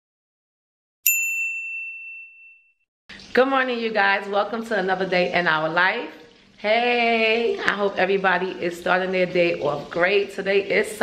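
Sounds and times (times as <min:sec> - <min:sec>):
bright bell-like ding: 0:01.1 - 0:02.8.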